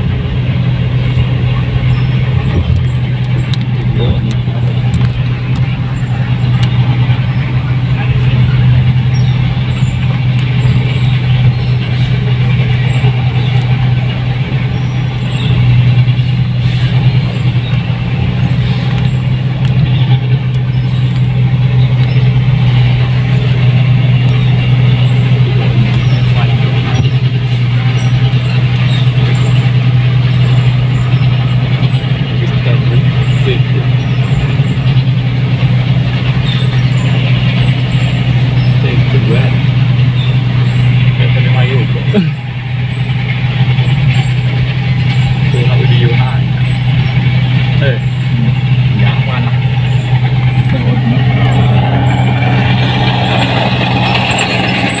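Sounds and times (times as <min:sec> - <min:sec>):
diesel engine low drone: 0:00.0 - 0:55.0
motorcycle engines: 0:00.0 - 0:55.0.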